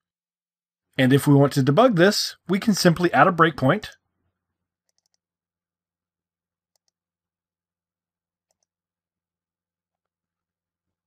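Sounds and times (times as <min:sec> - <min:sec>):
computer mouse clicks: 0:04.9 - 0:05.2, 0:06.7 - 0:07.0, 0:08.4 - 0:08.7.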